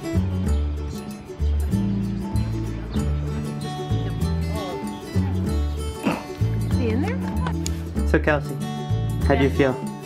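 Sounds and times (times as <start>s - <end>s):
background music with bass notes: 0.0s - 10.0s.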